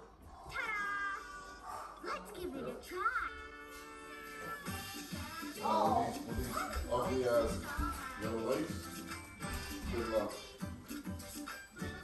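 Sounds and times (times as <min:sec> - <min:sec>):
cartoon cat meowing: 0:00.5 - 0:01.5
light background music: 0:01.3 - 0:12.0.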